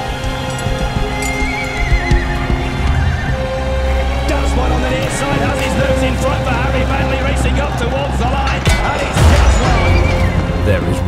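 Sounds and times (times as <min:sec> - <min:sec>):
hoof clops: 0:00.0 - 0:10.7
background music: 0:00.0 - 0:11.0.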